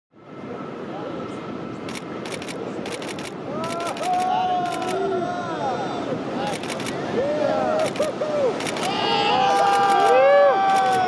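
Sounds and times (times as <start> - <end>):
surf breaking on beach: 0.3 - 11.0
camera shutter clicks: 1.9 - 5.0, 6.5 - 7.0, 7.8 - 11.0
voices calling out: 3.4 - 11.0.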